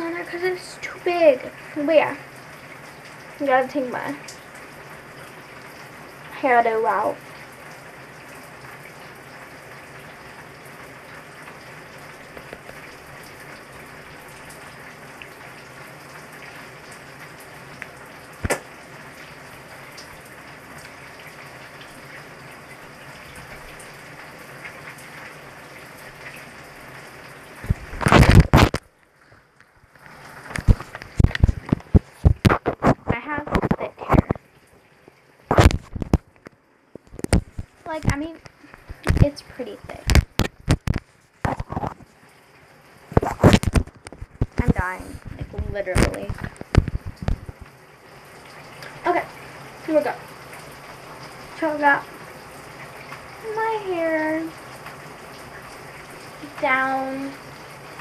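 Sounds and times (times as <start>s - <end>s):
rustling and scraping on microphone: 27.6s - 29.4s, 30.0s - 34.4s, 35.5s - 36.4s, 37.0s - 42.2s, 43.1s - 47.7s.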